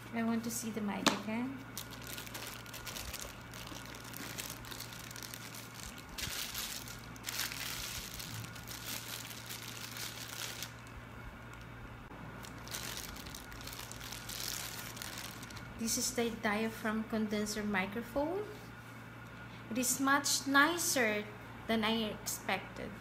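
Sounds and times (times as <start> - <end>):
plastic wrapping crinkling: 1.6 - 11.8, 12.4 - 15.8.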